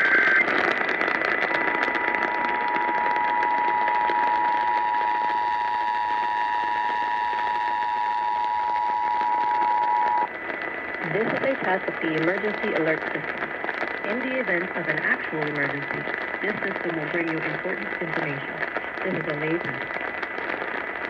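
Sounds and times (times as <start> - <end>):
radio static hiss: 0.0 - 21.0
faint steady whistle: 2.5 - 10.3.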